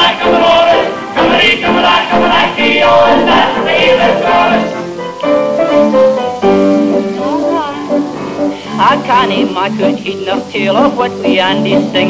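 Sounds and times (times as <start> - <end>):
person singing: 0.0 - 4.9, 6.8 - 12.0.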